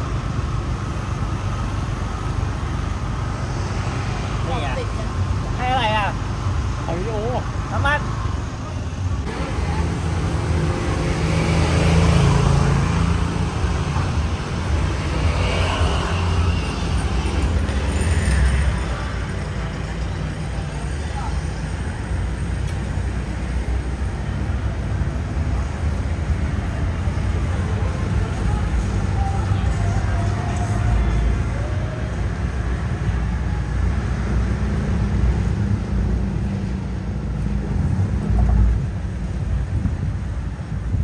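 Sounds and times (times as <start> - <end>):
road traffic rumble: 0.0 - 41.0
indistinct voices: 12.4 - 34.0.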